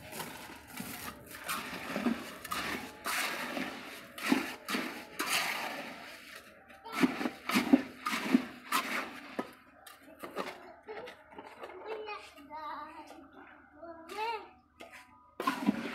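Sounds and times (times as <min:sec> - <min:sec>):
trowel scraping gravel mix: 0:00.0 - 0:10.6, 0:14.8 - 0:15.9.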